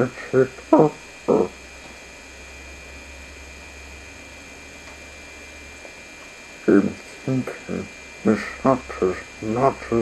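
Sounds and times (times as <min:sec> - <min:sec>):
electrical mains hum: 0:00.0 - 0:10.0
faint high whine: 0:00.0 - 0:10.0.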